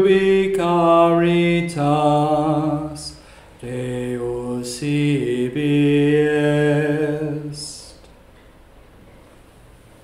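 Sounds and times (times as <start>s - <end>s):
man singing chant-like: 0.0s - 8.0s.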